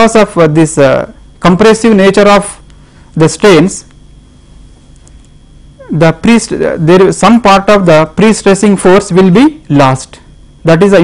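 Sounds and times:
man speaking: 0:00.0 - 0:02.6, 0:03.2 - 0:03.9, 0:05.8 - 0:11.0
high-pitched hum: 0:00.0 - 0:11.0.

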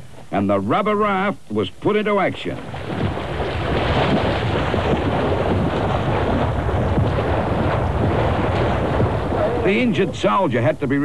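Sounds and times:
water splashing: 0:01.8 - 0:11.0.

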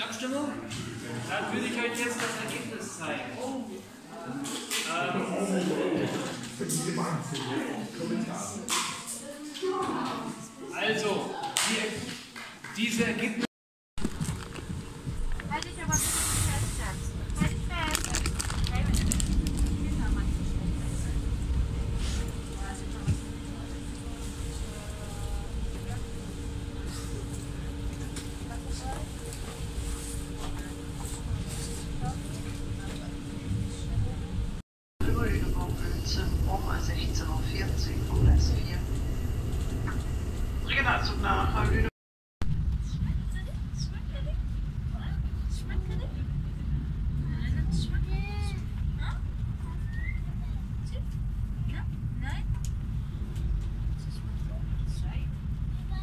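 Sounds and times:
faint steady hum: 0:14.0 - 0:41.9
train rumble inside carriage: 0:14.0 - 0:56.0
people talking: 0:15.4 - 0:34.4, 0:35.0 - 0:38.9, 0:40.7 - 0:41.9, 0:42.8 - 0:52.5, 0:53.9 - 0:56.0
vehicle interior rumble: 0:16.5 - 0:34.6.

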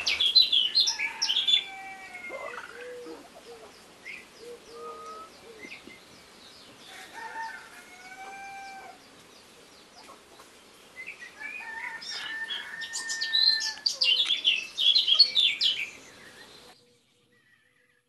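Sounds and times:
chickens squawking and clucking: 0:00.0 - 0:05.9, 0:06.9 - 0:09.0.

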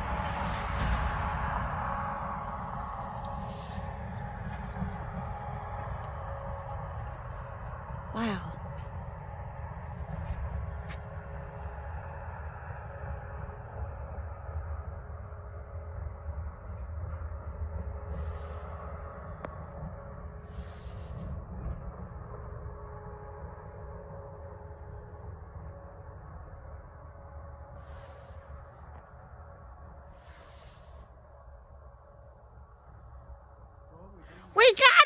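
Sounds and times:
faint steady hum: 0:00.0 - 0:35.0
low outdoor rumble: 0:00.0 - 0:35.0.

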